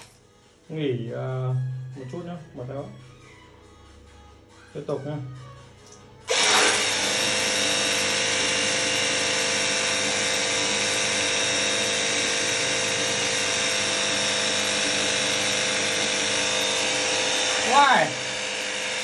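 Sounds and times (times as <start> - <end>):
pressure washer running: 6.3 - 19.0.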